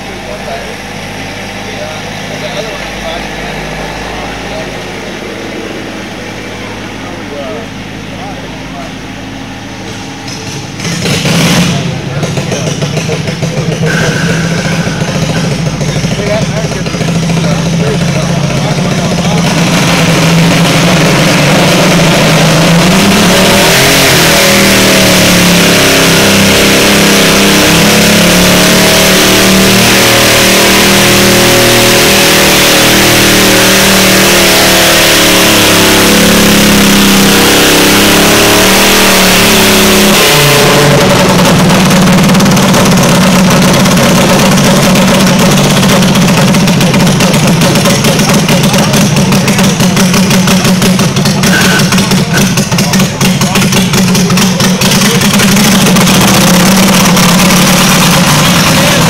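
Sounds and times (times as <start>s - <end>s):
garden tractor engine revving: 0.0s - 59.0s.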